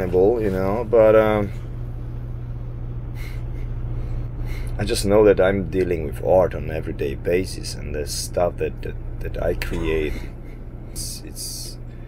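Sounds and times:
generator humming: 0.0 - 12.0
man speaking: 7.3 - 10.4, 11.0 - 11.8.

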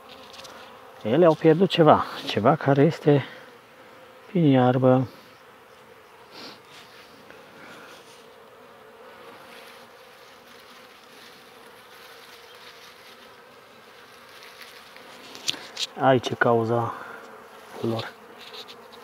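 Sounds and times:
honeybees buzzing: 0.0 - 19.0.

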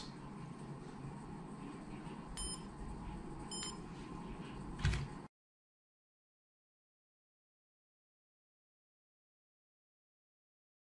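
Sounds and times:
short high beeps: 2.4 - 2.6, 3.5 - 3.8.

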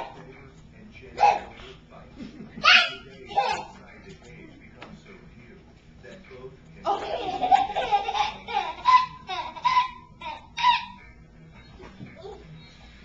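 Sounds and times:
high-pitched laughing: 7.1 - 11.0.

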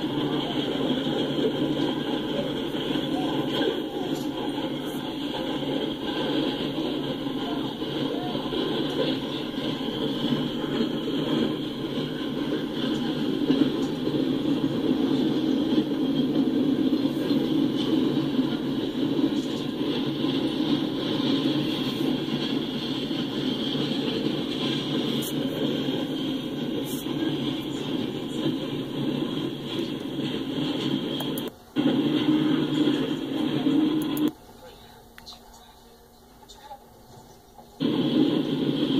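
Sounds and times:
freight train wheels rumbling on rails: 0.0 - 38.9.

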